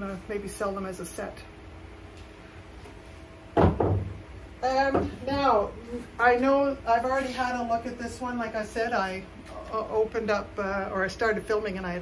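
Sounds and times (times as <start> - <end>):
low steady hum: 0.0 - 12.0
vases knocking on hard surface: 3.6 - 4.2.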